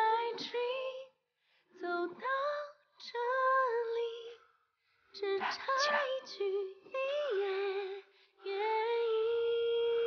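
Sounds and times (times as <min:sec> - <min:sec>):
woman singing pop ballad: 0:00.0 - 0:01.1, 0:01.8 - 0:04.4, 0:05.2 - 0:10.0.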